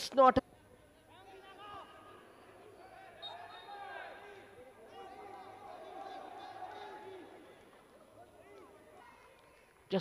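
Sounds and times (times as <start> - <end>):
low steady background noise: 0.0 - 10.0.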